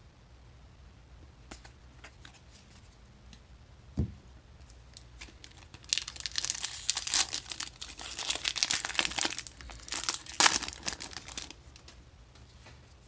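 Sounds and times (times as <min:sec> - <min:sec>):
foil wrapper crinkling and tearing: 0:05.2 - 0:11.9.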